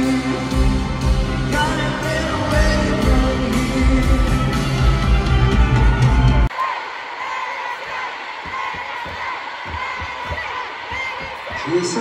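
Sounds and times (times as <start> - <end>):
live pop band playing: 0.0 - 6.5
crowd noise: 0.0 - 12.0.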